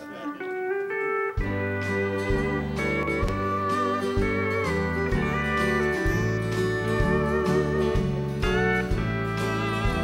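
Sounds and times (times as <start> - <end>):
country band playing slowly: 0.0 - 10.0
low bass notes: 1.3 - 10.0.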